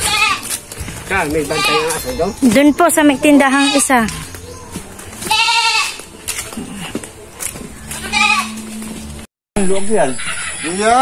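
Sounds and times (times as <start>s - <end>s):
young goat bleating: 0.0s - 0.6s, 1.4s - 2.2s, 3.4s - 4.2s, 5.2s - 6.0s, 8.0s - 8.6s.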